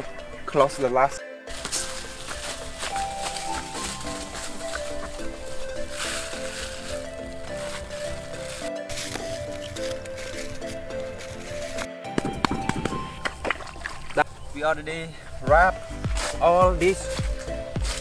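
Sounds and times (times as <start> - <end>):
background music with held notes: 0.0 - 18.0.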